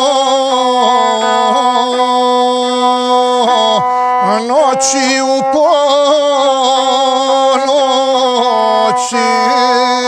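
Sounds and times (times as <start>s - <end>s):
bowed fiddle buzzy tone: 0.0s - 10.0s.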